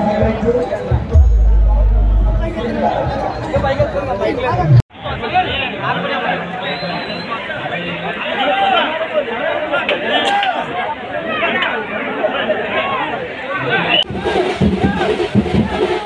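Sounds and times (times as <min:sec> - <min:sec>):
crowd chatter: 0:00.0 - 0:16.0.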